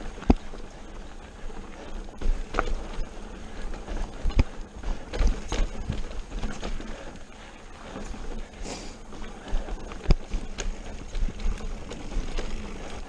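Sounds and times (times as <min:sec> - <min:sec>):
mountain bike clattering on rocks: 0:00.0 - 0:13.0.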